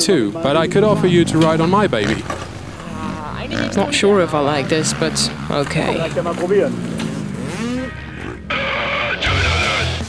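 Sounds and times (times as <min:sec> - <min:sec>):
motocross bike engine revving high: 0:00.0 - 0:10.0
voices: 0:00.0 - 0:10.0.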